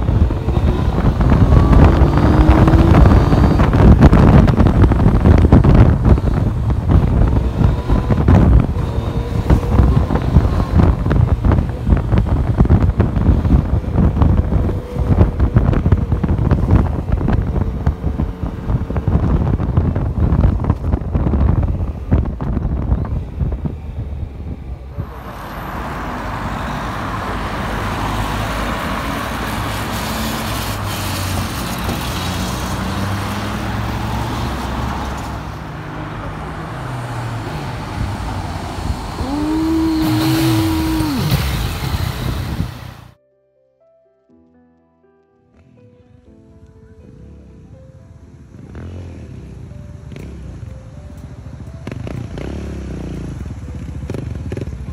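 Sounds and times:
motorcycle engine revving: 0.0s - 20.5s, 36.7s - 43.2s, 51.8s - 54.9s
cars going by: 0.0s - 43.2s, 47.0s - 54.9s
wind buffeting microphone: 0.0s - 43.2s.

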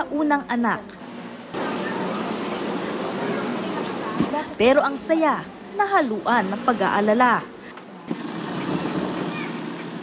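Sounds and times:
industrial sewing machine running: 8.1s - 10.0s.

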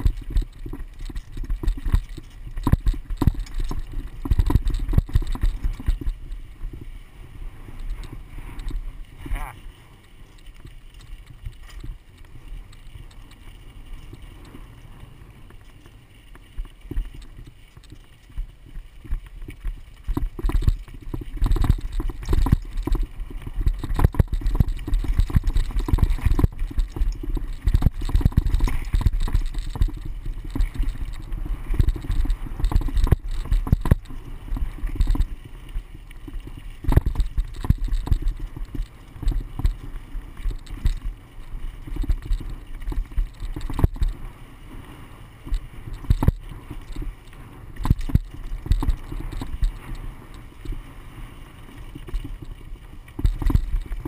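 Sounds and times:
bike rattling on dirt trail: 0.0s - 54.0s
wind rumbling on microphone: 0.0s - 54.0s.

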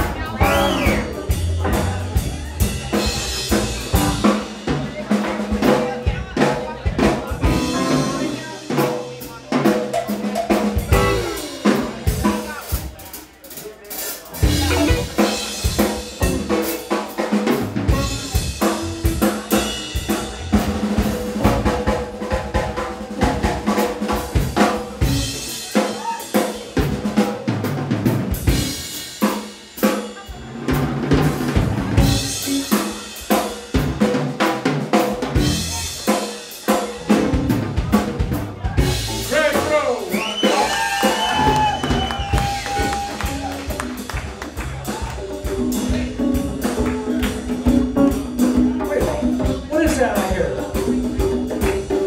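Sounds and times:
walking upright bass: 0.0s - 13.0s, 14.4s - 25.5s, 30.7s - 36.1s, 36.9s - 39.8s, 41.1s - 52.0s
drums and hand percussion: 0.0s - 52.0s.

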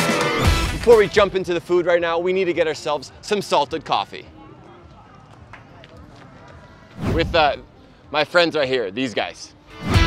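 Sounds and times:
faint distant voices: 2.4s - 8.9s.

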